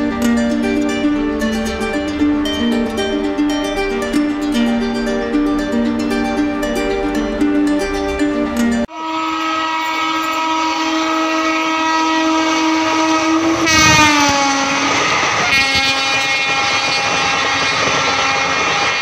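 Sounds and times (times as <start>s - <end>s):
rush of passing train coaches: 0.0s - 19.0s
train horn blast: 8.9s - 19.0s.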